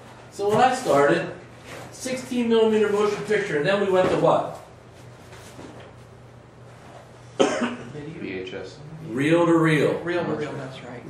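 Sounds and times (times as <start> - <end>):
person coughing: 7.4 - 7.9.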